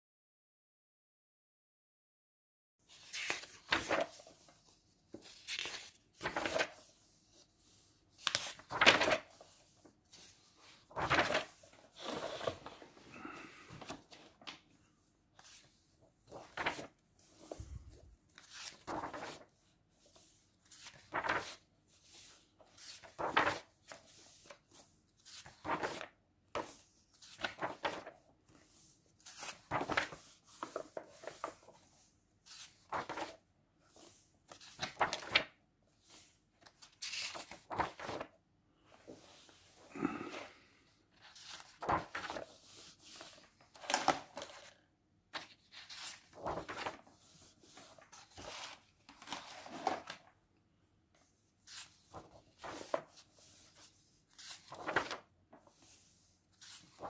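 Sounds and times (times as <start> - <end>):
paper pages turning: 2.9 - 14.7, 15.4 - 38.3, 41.2 - 50.3, 51.6 - 57.0.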